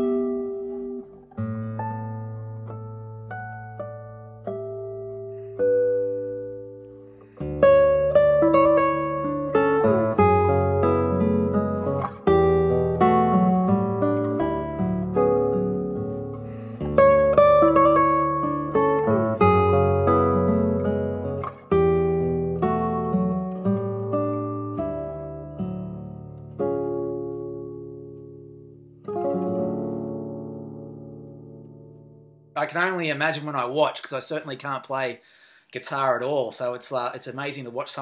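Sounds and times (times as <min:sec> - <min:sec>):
classical guitar fingerstyle: 0:00.0 - 0:32.5.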